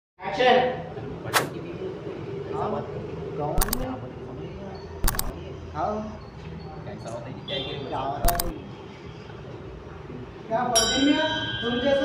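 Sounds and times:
sharp clicks: 0:03.6 - 0:03.9, 0:05.0 - 0:05.4, 0:08.2 - 0:08.6.

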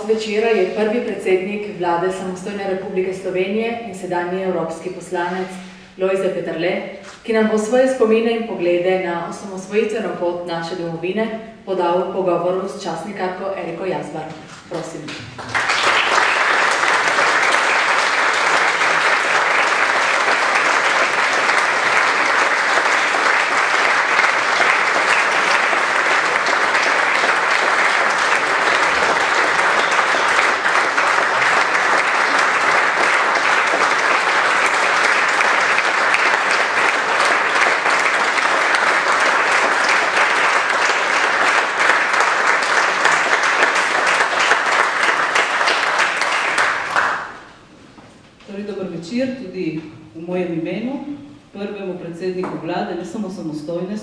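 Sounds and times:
audience applauding: 0:15.1 - 0:47.5.

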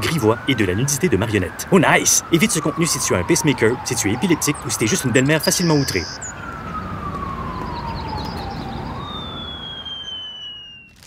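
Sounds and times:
siren wailing: 0:00.0 - 0:11.0
thin high gliding tone: 0:05.4 - 0:06.3, 0:08.4 - 0:11.0.

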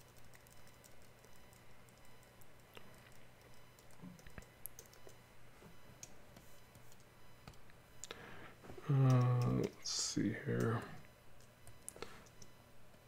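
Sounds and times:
keyboard and mouse clicking: 0:00.0 - 0:05.2, 0:09.0 - 0:09.8.

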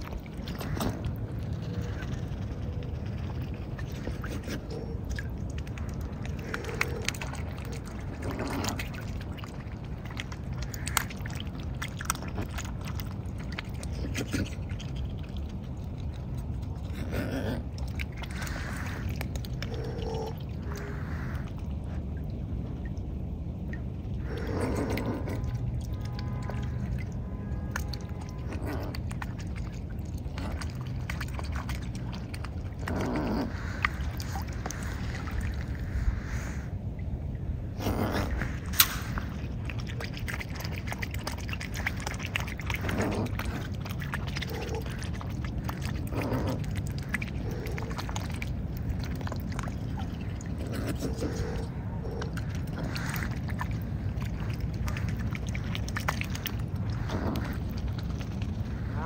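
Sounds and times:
water drips and clicks: 0:00.0 - 0:35.9, 0:36.9 - 0:59.0
steady low rumble: 0:00.0 - 0:59.0
swans slurping and splashing: 0:00.0 - 0:59.0.

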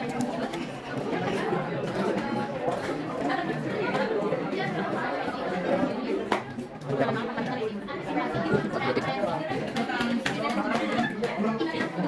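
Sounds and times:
students chattering: 0:00.0 - 0:12.0.

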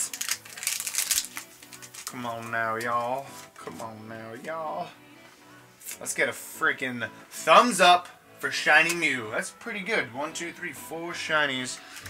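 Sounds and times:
trading card wrappers crinkling: 0:00.0 - 0:03.6, 0:11.8 - 0:12.0
background music: 0:00.0 - 0:12.0.

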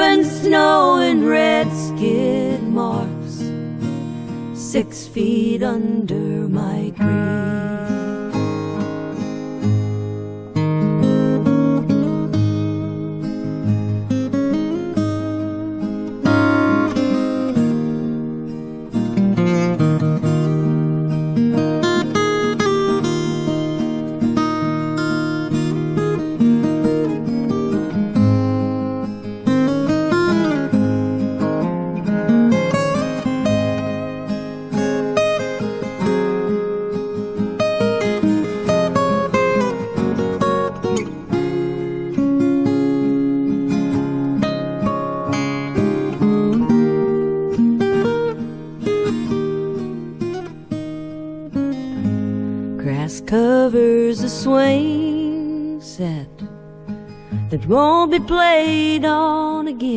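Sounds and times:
acoustic guitar strummed and picked: 0:00.0 - 0:59.9.

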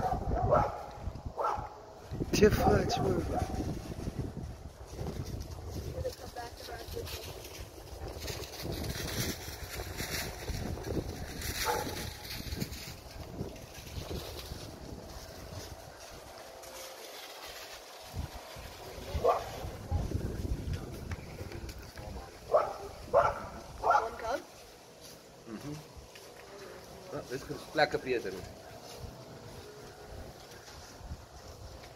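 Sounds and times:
dog barking: 0:00.0 - 0:01.8, 0:02.6 - 0:03.6, 0:11.6 - 0:12.1, 0:19.2 - 0:19.6, 0:22.5 - 0:24.2
wind rumble on microphone: 0:00.0 - 0:16.8, 0:17.4 - 0:24.7, 0:28.3 - 0:31.9.

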